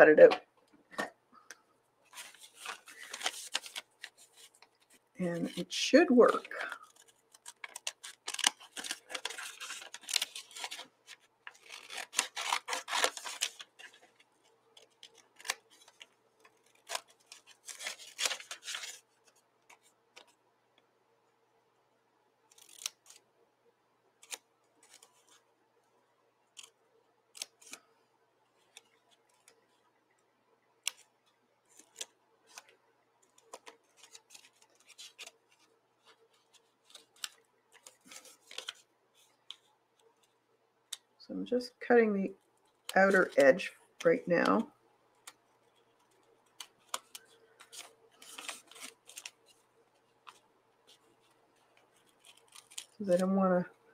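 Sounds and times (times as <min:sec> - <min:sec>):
paper rustling: 0:02.1 - 0:20.4, 0:30.9 - 0:40.4, 0:45.2 - 0:53.3
scissors snipping paper: 0:06.7 - 0:10.9, 0:11.5 - 0:14.2, 0:14.8 - 0:19.0, 0:22.5 - 0:23.2, 0:51.8 - 0:53.0.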